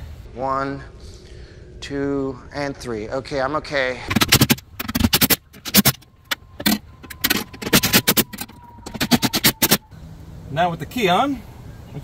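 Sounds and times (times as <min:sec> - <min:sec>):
sharp percussive clicks and pops: 0:04.1 - 0:09.8.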